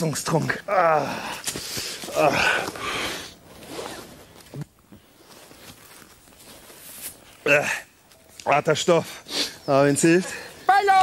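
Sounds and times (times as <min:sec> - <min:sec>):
rustling of gloves and jacket: 0:01.4 - 0:07.4.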